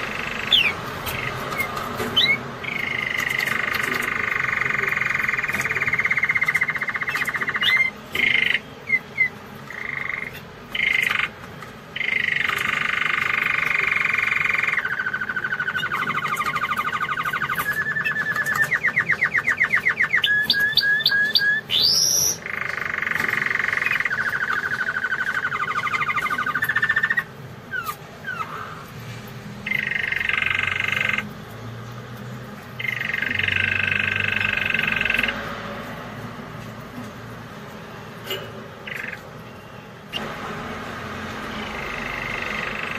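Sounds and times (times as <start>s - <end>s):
canary singing: 0.0s - 42.9s.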